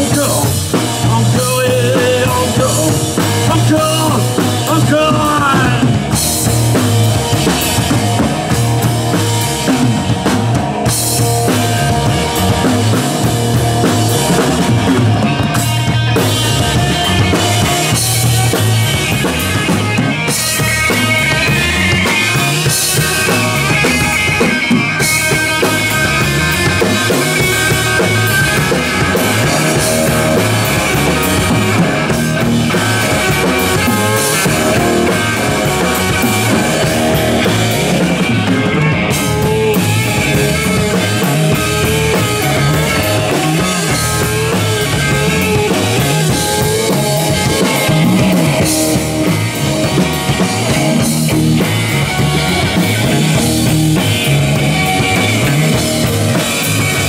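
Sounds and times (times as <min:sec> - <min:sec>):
bass guitar: 0:00.0 - 0:57.0
drum kit: 0:00.0 - 0:57.0
electric guitar: 0:00.0 - 0:57.0.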